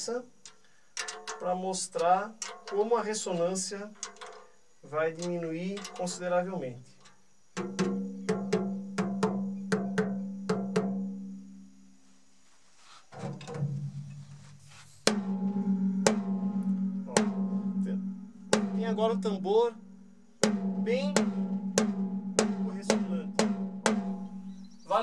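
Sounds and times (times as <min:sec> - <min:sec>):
drumstick striking tom drum: 0:07.6 - 0:11.1, 0:15.0 - 0:19.4, 0:20.4 - 0:24.6
tom drum tapped lightly: 0:07.6 - 0:11.1.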